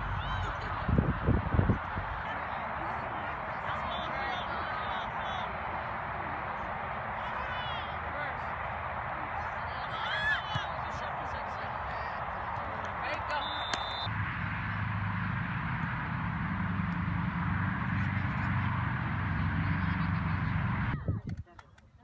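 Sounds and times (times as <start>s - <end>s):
voices and distant shouts: 0.0s - 14.1s
referee's whistle blast: 13.4s - 14.1s.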